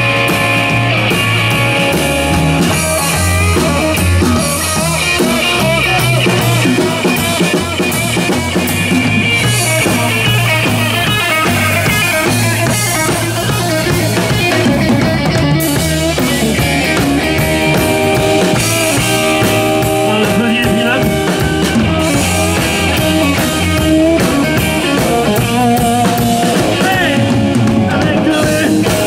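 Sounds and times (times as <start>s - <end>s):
bass guitar: 0.0s - 29.0s
drum kit beat: 0.0s - 29.0s
electric guitar: 0.0s - 29.0s.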